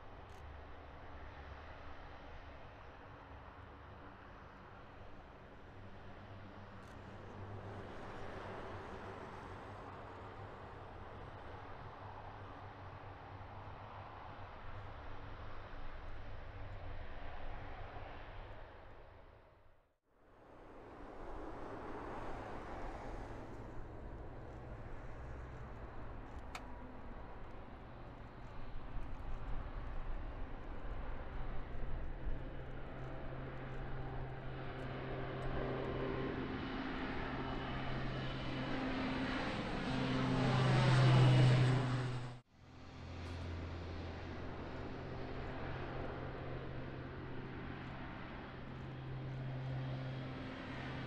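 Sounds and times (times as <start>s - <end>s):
turboprop propeller drone: 0.0s - 19.3s, 20.3s - 51.0s.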